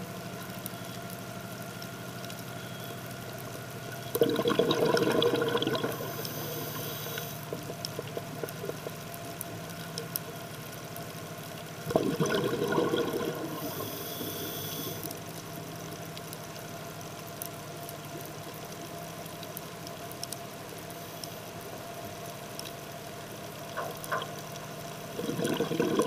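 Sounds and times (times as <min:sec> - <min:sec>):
boat engine hum underwater: 0:00.0 - 0:26.0
diver exhaling bubbles: 0:04.2 - 0:09.0, 0:11.9 - 0:15.0, 0:25.1 - 0:26.0
high hiss: 0:06.0 - 0:07.5, 0:13.6 - 0:15.0.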